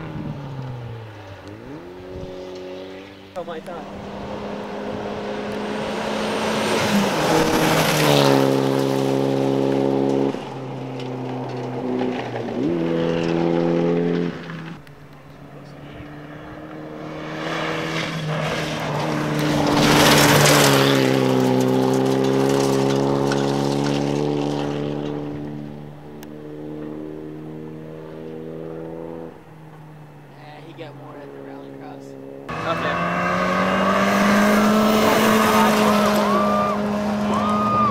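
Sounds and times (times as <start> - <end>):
gravel and tyres hissing: 0.0 - 27.4
rally car engines revving: 0.0 - 37.9.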